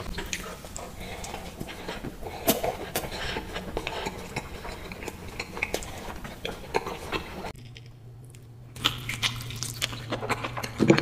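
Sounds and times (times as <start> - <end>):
biting into soft bread: 0.0 - 11.0
chewing: 0.0 - 11.0.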